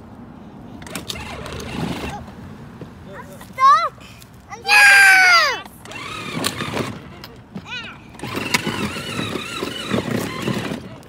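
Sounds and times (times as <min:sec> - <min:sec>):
toy truck motor whining: 0:00.8 - 0:02.2, 0:05.8 - 0:07.3, 0:08.1 - 0:11.0.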